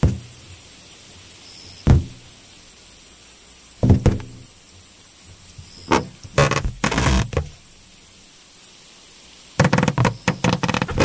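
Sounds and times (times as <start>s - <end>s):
hollow knock on balloon: 1.9s - 2.3s, 3.8s - 4.4s.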